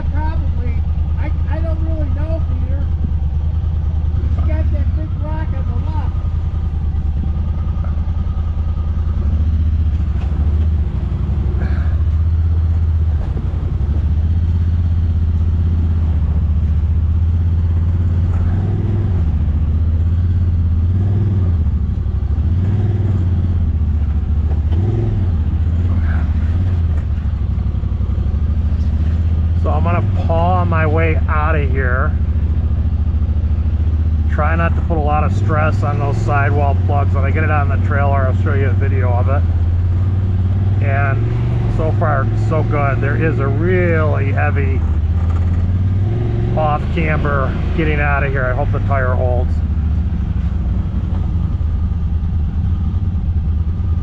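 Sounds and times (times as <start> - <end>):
engine running at low revs: 0.0 - 54.0.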